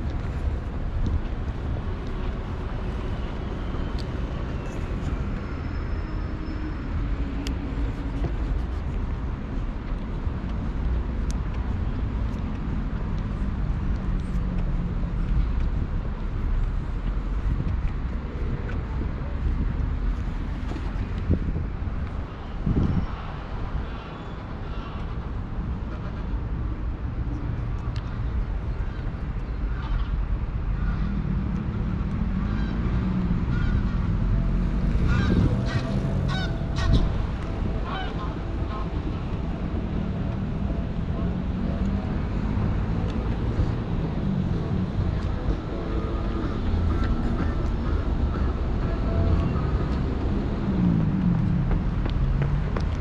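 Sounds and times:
traffic rumble: 0:00.0 - 0:53.0
wind on microphone: 0:15.0 - 0:23.8, 0:30.8 - 0:53.0.

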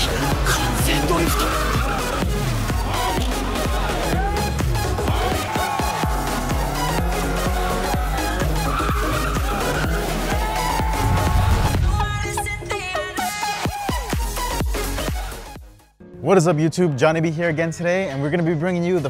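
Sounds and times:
car engines revving: 0:00.0 - 0:10.6
music with heavy bass beat: 0:00.0 - 0:15.8
tyres squealing: 0:00.5 - 0:03.6, 0:06.8 - 0:11.0.

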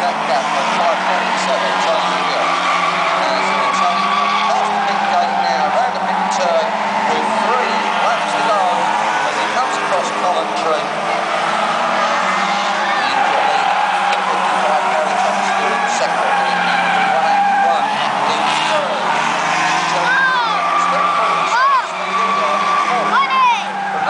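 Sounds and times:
race car engines: 0:00.0 - 0:24.0
tyre squeals: 0:00.0 - 0:24.0.

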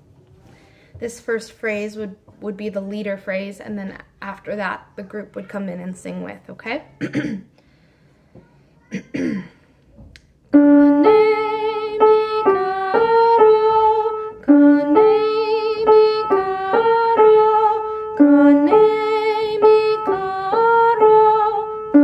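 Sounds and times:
woman singing folk song: 0:10.8 - 0:22.0.

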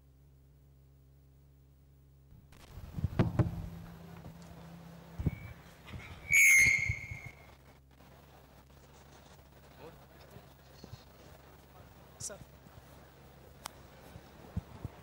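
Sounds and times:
thumps on a microphone: 0:03.0 - 0:03.6
high-pitched feedback squeal: 0:06.2 - 0:07.5.

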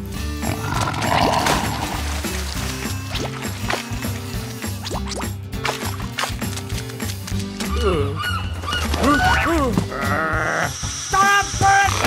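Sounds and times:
background music: 0:00.0 - 0:12.0
cartoon whines and grunts: 0:09.0 - 0:10.8.

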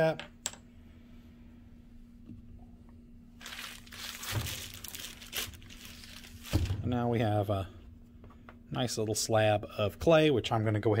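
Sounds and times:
plastic wrap crinkling: 0:03.4 - 0:06.9.

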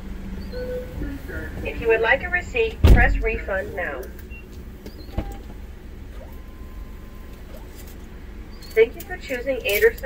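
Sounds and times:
car engine idling: 0:00.0 - 0:10.0
thump: 0:02.8 - 0:03.2.

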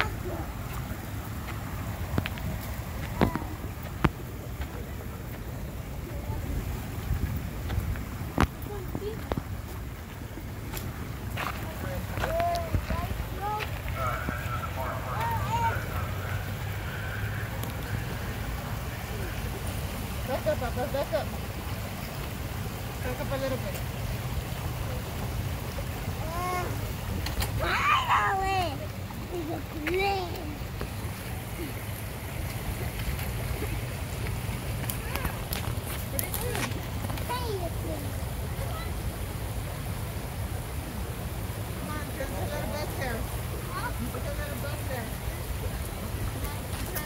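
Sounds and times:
faint voices: 0:00.0 - 0:47.0
stream rushing over rocks: 0:00.0 - 0:47.0.

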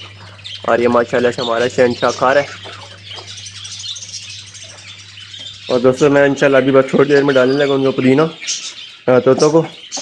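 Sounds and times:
budgerigars chirping: 0:00.0 - 0:10.0.

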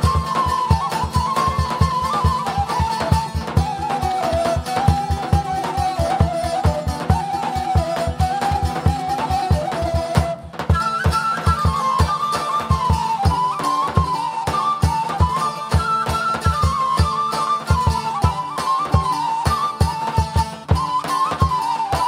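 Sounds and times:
folk dance music: 0:00.0 - 0:22.0.

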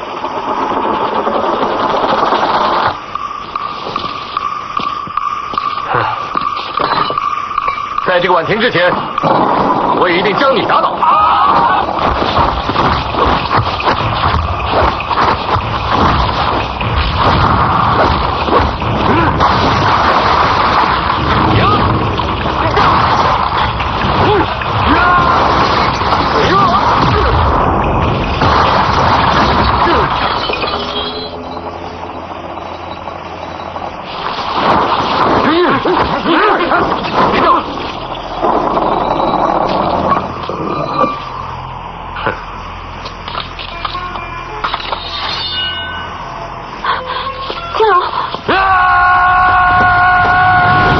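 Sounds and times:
rush of noise: 0:00.0 - 0:44.9, 0:48.1 - 0:50.9
action sound effects and music: 0:00.0 - 0:48.6
background music with drone: 0:39.9 - 0:50.9.

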